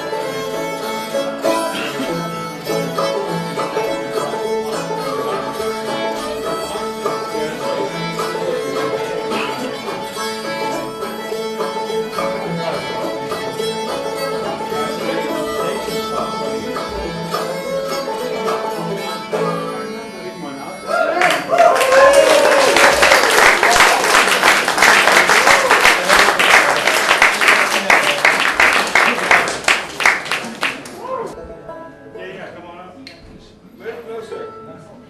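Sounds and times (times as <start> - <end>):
banjo playing: 0.0 - 21.0, 22.2 - 35.0
fiddle playing: 0.0 - 32.8.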